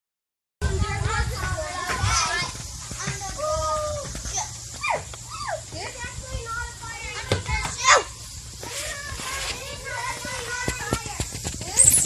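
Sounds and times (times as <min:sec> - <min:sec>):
children playing: 0:00.6 - 0:12.0
child's high-pitched squeal: 0:04.8 - 0:05.7, 0:07.8 - 0:09.5.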